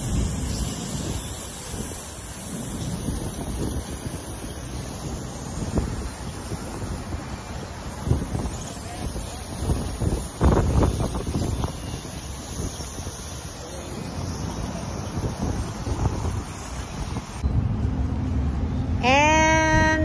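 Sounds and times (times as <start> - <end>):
wind buffeting microphone: 0.0 - 13.4, 14.8 - 17.8
airbrush spraying hiss: 0.0 - 17.4.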